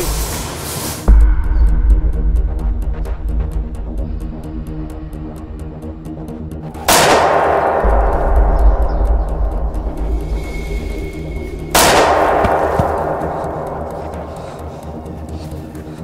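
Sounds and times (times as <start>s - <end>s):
dramatic background music: 0.0s - 16.0s
pistol gunshots with echo: 6.8s - 8.2s, 11.8s - 14.7s.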